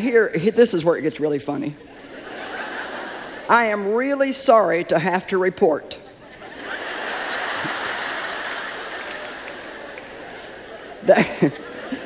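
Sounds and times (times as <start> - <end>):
audience laughing: 1.8 - 3.9, 6.0 - 12.0.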